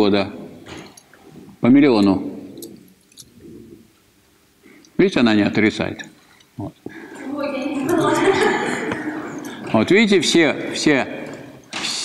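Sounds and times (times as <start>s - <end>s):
students' voices: 6.6s - 12.0s
woman speaking from the room: 7.2s - 8.8s.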